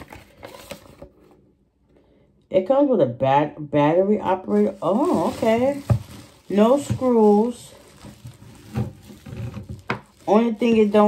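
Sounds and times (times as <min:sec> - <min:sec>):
rustling product packaging: 0:00.0 - 0:01.4, 0:04.2 - 0:11.0.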